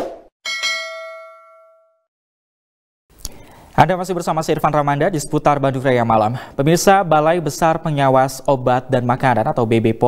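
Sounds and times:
bright bell ding: 0:00.5 - 0:02.1.

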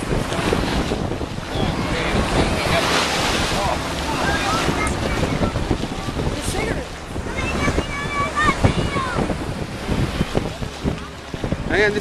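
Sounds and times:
surf washing onto sand: 0:00.0 - 0:12.0
wind buffeting microphone: 0:00.0 - 0:12.0
voices calling: 0:01.4 - 0:09.5.

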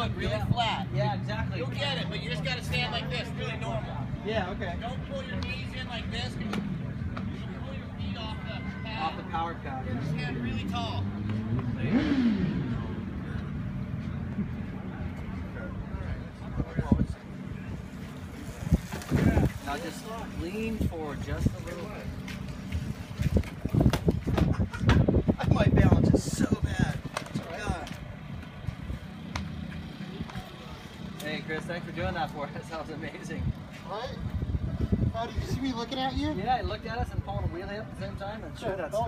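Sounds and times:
low outdoor rumble: 0:09.2 - 0:39.0
vehicle engine revving: 0:09.7 - 0:15.6.

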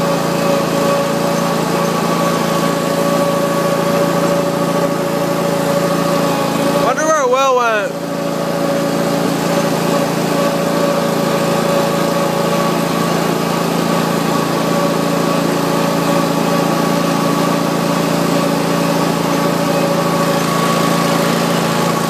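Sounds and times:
lawn mower engine humming: 0:00.0 - 0:22.0.

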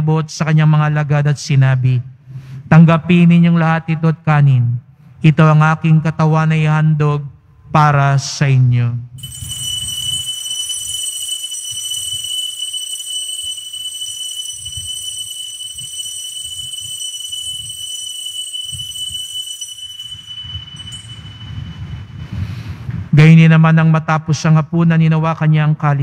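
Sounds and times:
altar bell ringing: 0:09.2 - 0:22.4.

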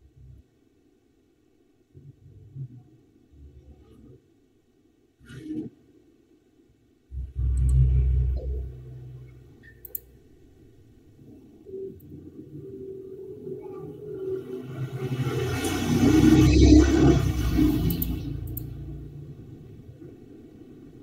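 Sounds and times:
faint higher hum: 0:00.0 - 0:15.0
low rumble: 0:07.1 - 0:21.0.

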